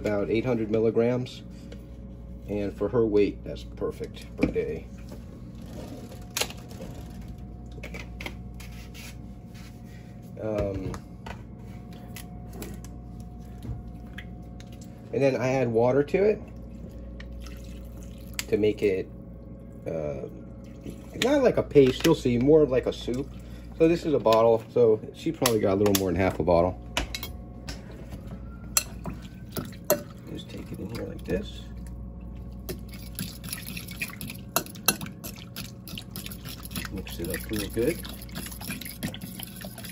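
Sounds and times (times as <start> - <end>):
low steady hum: 0.0 - 39.9.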